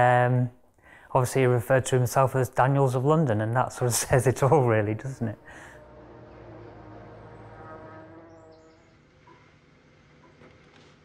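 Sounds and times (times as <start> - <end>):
soft drone of held tones: 5.2 - 9.5
faint bird chirps: 8.2 - 9.4.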